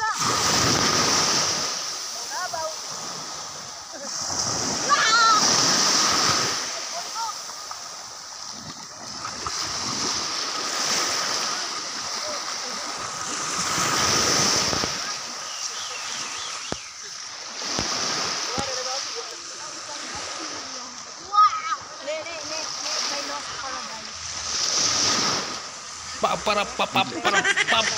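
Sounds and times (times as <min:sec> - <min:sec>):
people's voices: 0:00.0 - 0:08.1, 0:10.8 - 0:27.9
small waves splashing on shore: 0:00.0 - 0:27.9.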